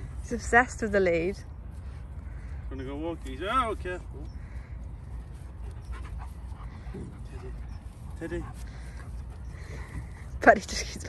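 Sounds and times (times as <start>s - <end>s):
steady low rumble: 0.0s - 11.0s
dog panting: 3.3s - 11.0s.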